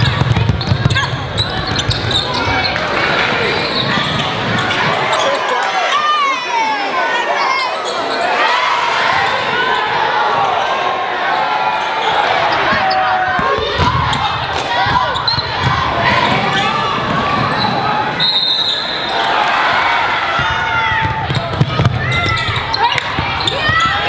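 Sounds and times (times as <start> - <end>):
shouts and chatter: 0.0 - 24.0.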